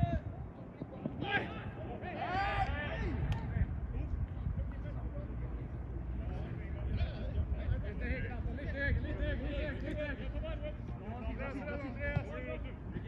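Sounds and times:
players shouting: 1.0 - 3.7.

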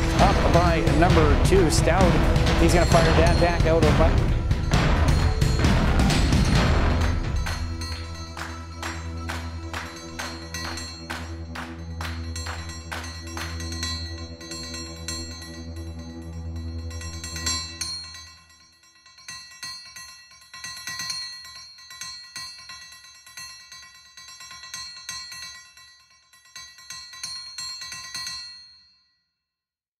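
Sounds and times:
deep bass part: 0.0 - 8.2
high notes over ticking beat: 0.0 - 16.0.

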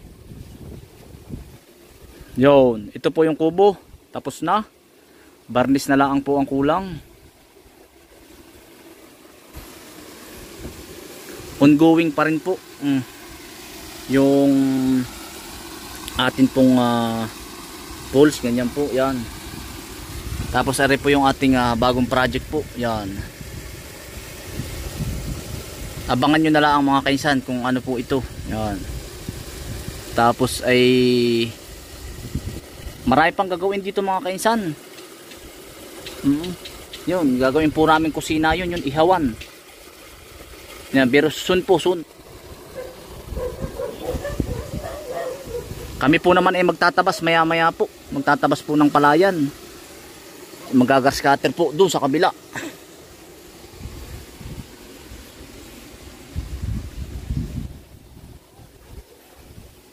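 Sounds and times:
wind buffeting microphone: 0.0 - 1.6, 19.4 - 21.2, 22.3 - 26.2, 32.0 - 33.0, 43.1 - 46.0, 53.8 - 54.8, 56.3 - 59.7
outdoor background noise: 0.0 - 20.7, 21.3 - 59.9
faint steady hiss: 0.0 - 59.9
small ticks: 35.0 - 37.1.

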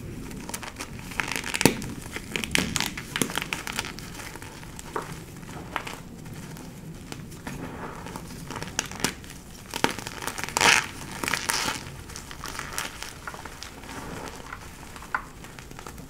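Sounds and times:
hands crushing chalk blocks: 0.0 - 16.0.

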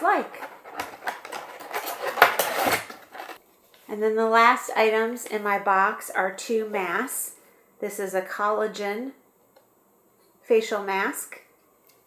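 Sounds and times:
packaging rustling: 0.0 - 3.4.

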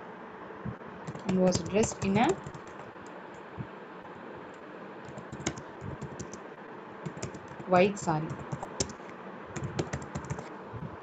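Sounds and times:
keyboard key clicks: 5.1 - 6.4.

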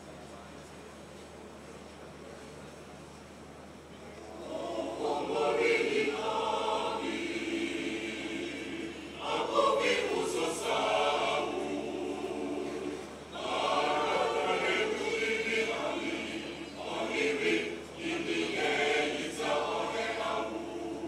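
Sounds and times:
mixed choir singing: 4.3 - 21.0.

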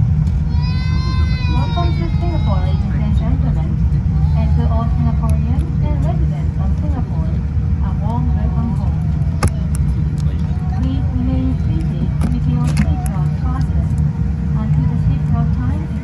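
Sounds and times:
aircraft cabin low rumble: 0.0 - 16.0.

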